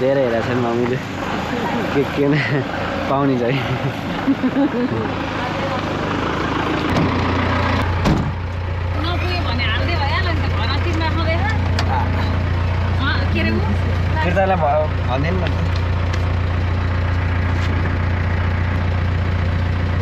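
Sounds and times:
voices talking: 0:00.0 - 0:06.8, 0:08.6 - 0:17.3
vehicle engine idling: 0:00.0 - 0:20.0
thud: 0:08.0 - 0:08.4.

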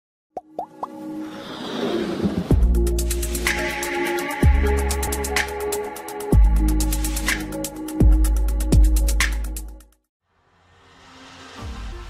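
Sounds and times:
musical riser: 0:01.0 - 0:06.2, 0:10.3 - 0:12.0.

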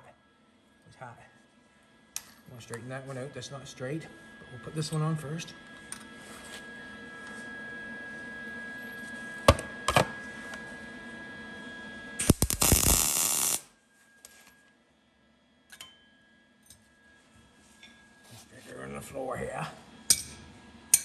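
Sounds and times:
welder crackling: 0:12.2 - 0:14.4.

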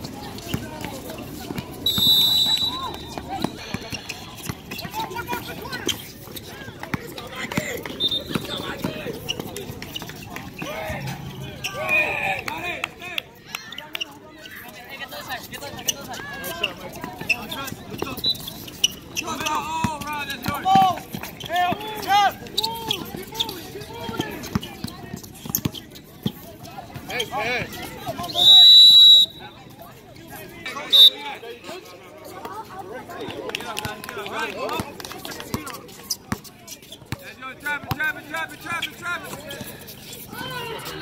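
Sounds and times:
players calling out: 0:00.3 - 0:14.6
referee's whistle: 0:01.8 - 0:03.6, 0:07.9 - 0:08.7, 0:28.2 - 0:29.6, 0:30.8 - 0:31.3.

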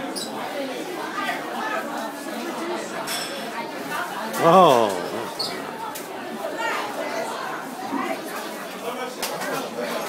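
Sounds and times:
diners chattering: 0:04.4 - 0:07.1.

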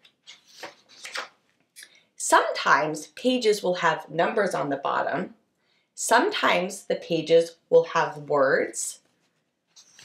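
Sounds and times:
book pages turning: 0:00.0 - 0:01.4, 0:09.1 - 0:10.0.

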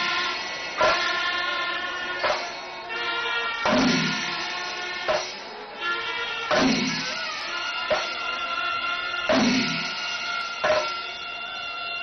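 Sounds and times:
ringing siren-like tone: 0:00.0 - 0:12.0
temple drums and cymbals: 0:00.0 - 0:12.0.

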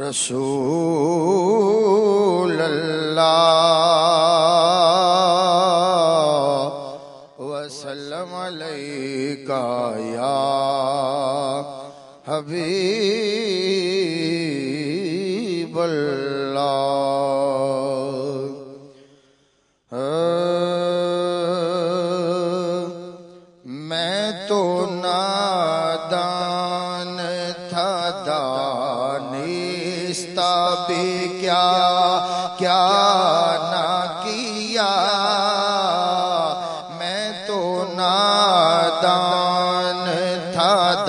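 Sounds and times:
man singing into a microphone: 0:00.0 - 0:19.0, 0:19.9 - 0:41.0.

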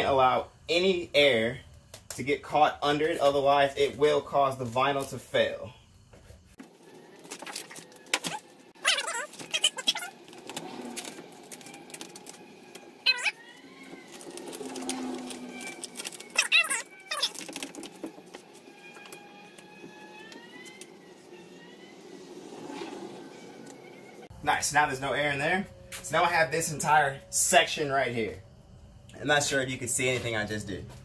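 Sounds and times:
vinyl film crinkling and rubbing: 0:06.6 - 0:21.3
short squeaks: 0:06.9 - 0:24.3.

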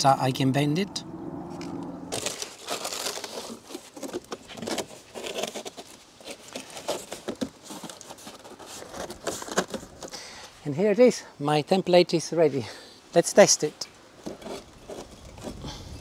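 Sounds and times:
cardboard rustling and crackling: 0:02.1 - 0:10.2, 0:14.2 - 0:16.0.

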